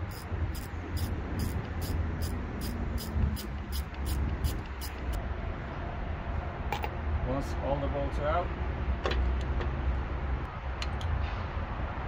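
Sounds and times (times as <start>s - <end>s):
ratchet wrench clicking: 0.0s - 5.2s.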